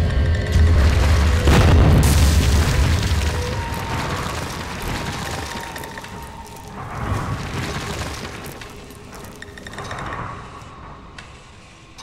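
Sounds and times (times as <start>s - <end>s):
wall bursting boom and crash: 0.7s - 6.2s.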